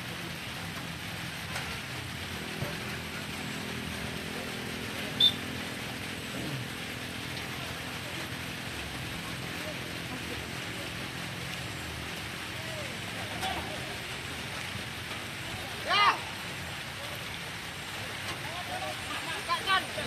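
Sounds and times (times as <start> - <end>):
distant voices: 0.0 - 20.0.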